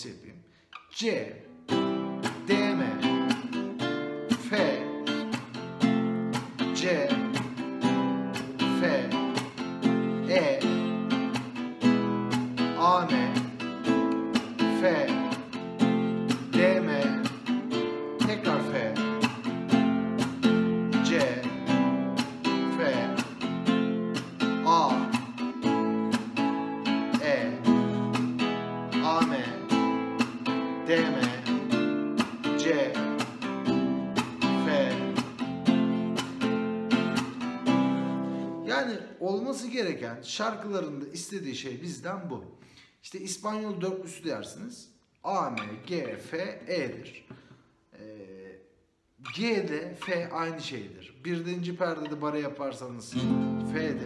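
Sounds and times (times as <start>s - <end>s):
nylon-string guitar strumming chords: 1.4s - 38.7s, 53.1s - 54.0s.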